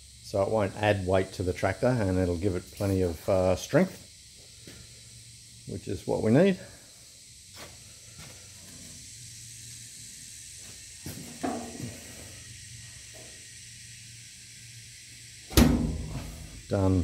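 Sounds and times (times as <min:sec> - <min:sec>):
background hiss: 0:00.0 - 0:17.0.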